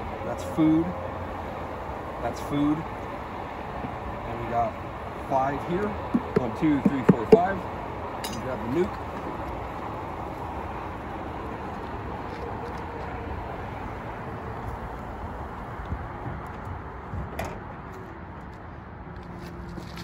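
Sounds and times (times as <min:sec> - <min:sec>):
steady background noise: 0:00.0 - 0:20.0
wooden box knock: 0:06.1 - 0:07.5.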